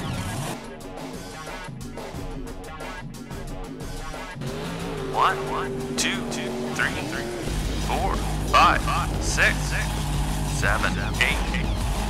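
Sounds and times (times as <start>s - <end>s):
high voices calling: 5.0s - 11.8s.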